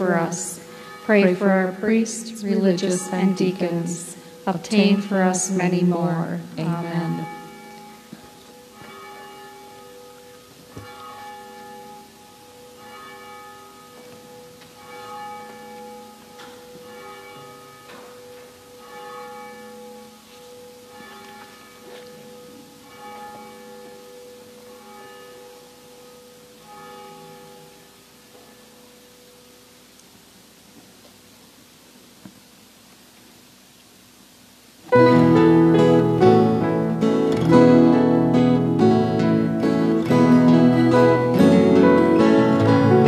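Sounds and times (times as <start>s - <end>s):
church bells ringing: 0.0s - 29.7s, 34.9s - 43.0s.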